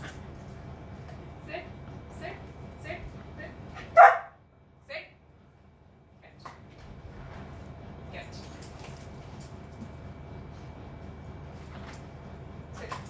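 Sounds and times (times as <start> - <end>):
dog barking: 3.9 - 4.4.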